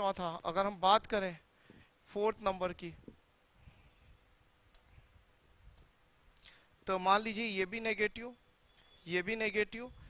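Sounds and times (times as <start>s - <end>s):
man speaking: 0.0s - 1.4s, 2.1s - 3.1s, 6.8s - 8.4s, 9.1s - 10.0s.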